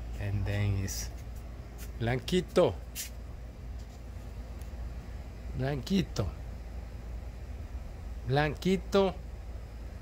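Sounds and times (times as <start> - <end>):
faint hiss: 0.0 - 10.0
low background hum: 0.0 - 10.0.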